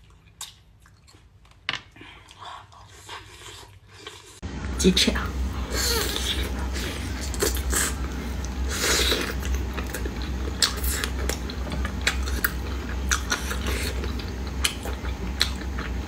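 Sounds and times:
steady low hum: 0.0s - 16.0s
chewing and biting chicken wings: 6.0s - 16.0s.

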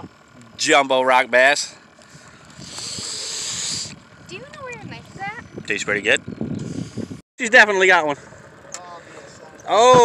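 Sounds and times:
breathy hiss of air: 2.1s - 4.0s.

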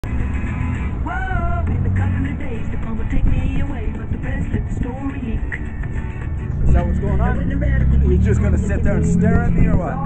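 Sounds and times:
music with singing: 0.0s - 10.0s
vehicle engine: 0.0s - 10.0s
road rumble inside car: 6.5s - 10.0s.

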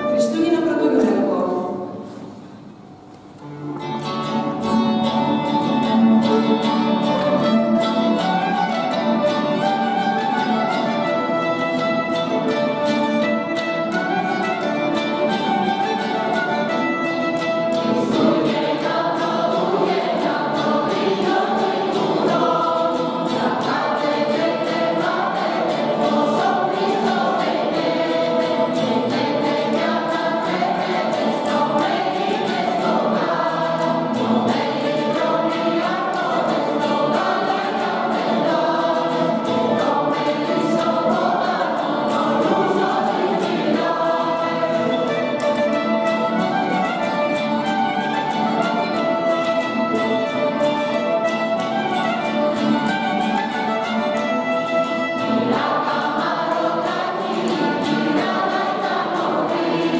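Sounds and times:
violin and lutes: 0.0s - 2.2s, 3.3s - 59.9s
choir singing a carol: 0.0s - 2.6s, 3.5s - 59.9s.

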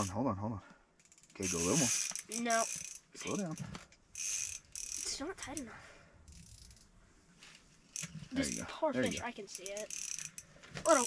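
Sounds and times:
fishing reel whirring: 1.0s - 5.6s, 6.3s - 6.9s, 7.9s - 11.0s.

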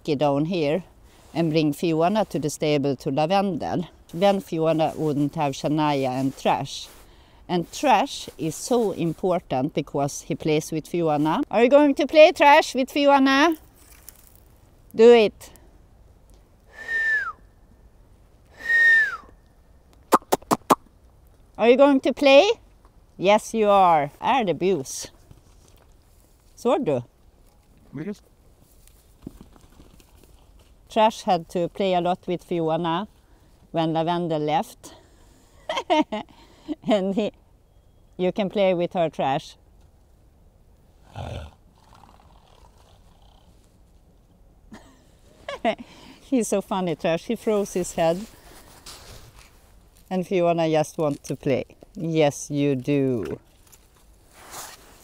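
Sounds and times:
person whistling: 16.8s - 17.4s, 18.6s - 19.3s
woman laughing: 35.7s - 37.2s, 44.7s - 45.9s.

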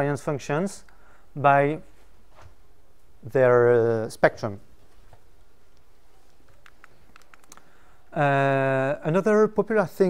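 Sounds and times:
keyboard keys clicking: 6.5s - 7.6s.

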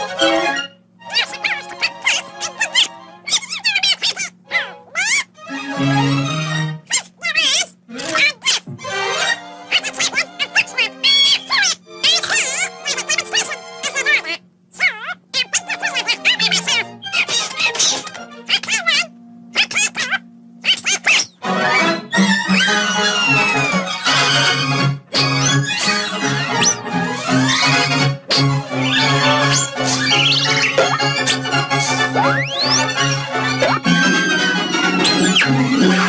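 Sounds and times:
orchestral cartoon music: 0.0s - 7.6s, 8.7s - 14.4s, 15.4s - 36.0s
squawky cartoon duck voice: 0.1s - 24.5s, 25.3s - 34.1s, 35.0s - 36.0s
background music held note: 19.1s - 19.6s, 20.2s - 20.6s.

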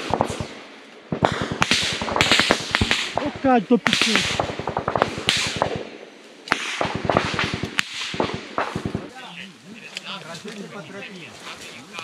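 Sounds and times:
automatic gunfire: 0.0s - 5.9s, 6.5s - 9.1s.

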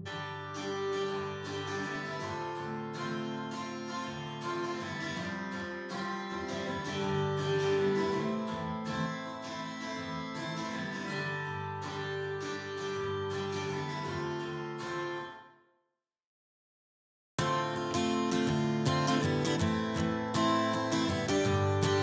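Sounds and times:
strummed acoustic guitar: 0.0s - 15.6s, 17.4s - 22.0s.

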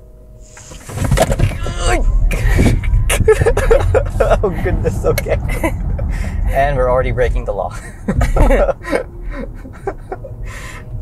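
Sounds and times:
tyre and road noise rumble: 0.0s - 11.0s
people laughing and exclaiming: 1.6s - 6.1s.

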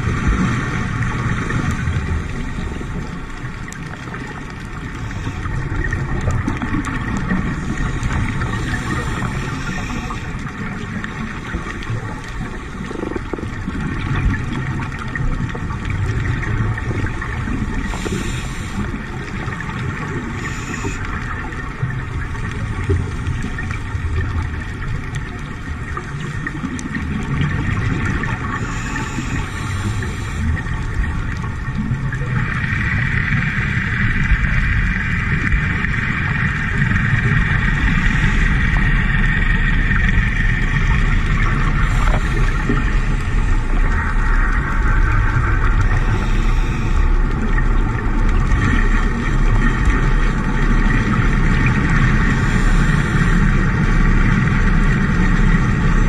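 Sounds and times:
underwater low rumble and hiss: 0.0s - 56.0s.

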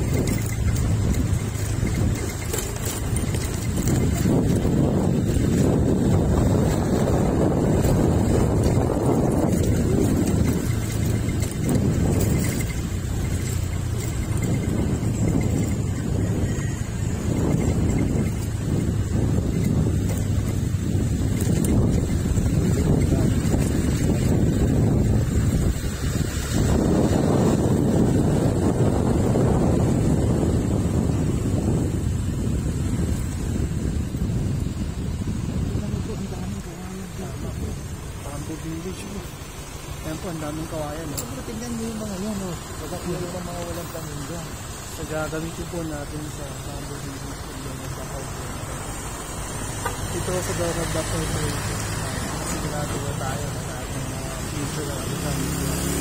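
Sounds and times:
vehicle rumble: 0.0s - 56.0s
wind buffeting microphone: 0.0s - 56.0s.

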